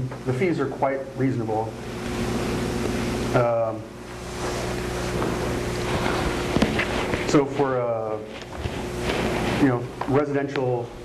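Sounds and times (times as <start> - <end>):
low electrical hum: 0.0 - 11.0
steady hiss: 0.0 - 11.0.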